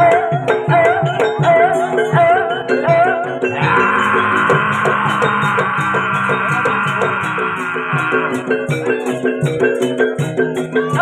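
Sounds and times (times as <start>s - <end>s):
gamelan strokes: 0.0s - 11.0s
shrill sustained tone: 3.5s - 8.7s.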